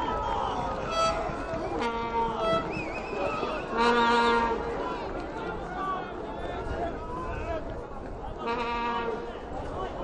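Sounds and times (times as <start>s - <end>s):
murmur of chatter: 0.0s - 10.0s.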